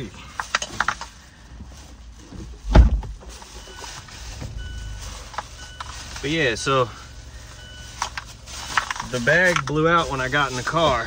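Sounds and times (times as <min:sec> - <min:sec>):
loud thump: 0:02.6 - 0:03.2
plastic bag crinkling: 0:03.2 - 0:11.0.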